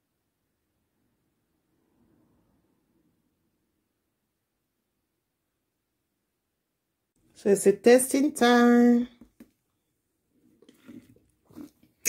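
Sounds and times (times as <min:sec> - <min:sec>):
sipping through a straw: 0:10.4 - 0:12.0.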